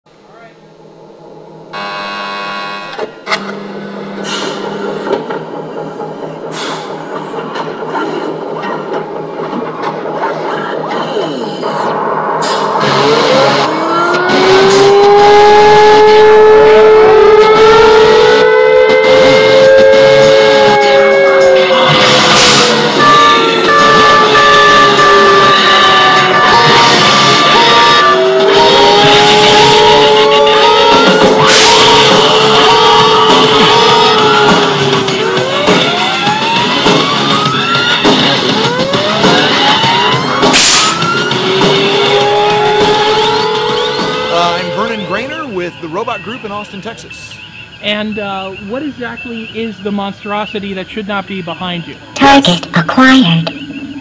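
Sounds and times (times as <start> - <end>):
electronic music: 21.4 - 45.6.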